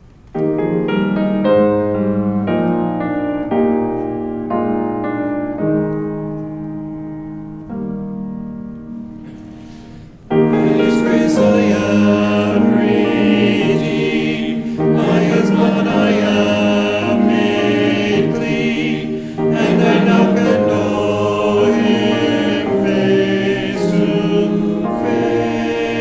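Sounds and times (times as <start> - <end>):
mixed choir singing: 10.3 - 26.0.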